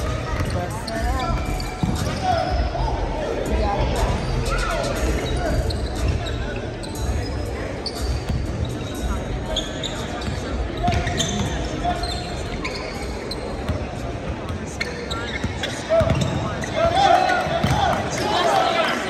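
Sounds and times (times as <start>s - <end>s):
shoe squeaks: 0.0s - 2.6s, 5.2s - 14.0s, 14.7s - 16.8s
basketballs bouncing on gym floor: 0.0s - 2.8s, 10.2s - 11.6s, 15.4s - 18.1s.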